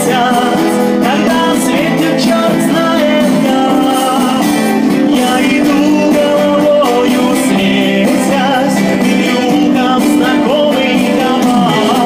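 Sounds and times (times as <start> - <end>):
man singing: 0.0 - 12.0
strummed acoustic guitar: 0.0 - 12.0.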